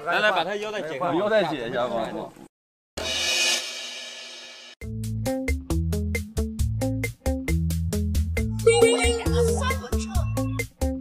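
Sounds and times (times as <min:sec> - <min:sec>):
cymbal crash: 0:03.0 - 0:04.8
bouncy music with bass and drums: 0:04.8 - 0:11.0.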